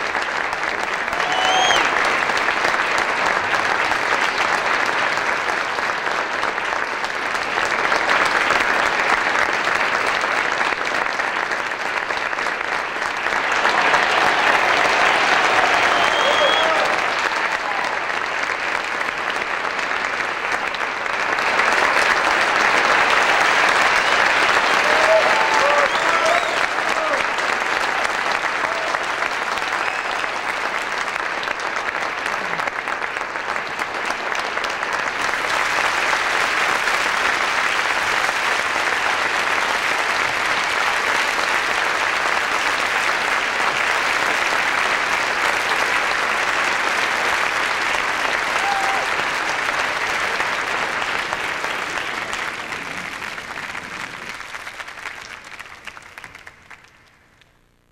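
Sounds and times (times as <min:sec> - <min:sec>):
audience applauding: 0:00.0 - 0:57.4
voices cheering: 0:01.0 - 0:02.0, 0:13.3 - 0:18.2, 0:23.6 - 0:30.6, 0:48.4 - 0:50.1.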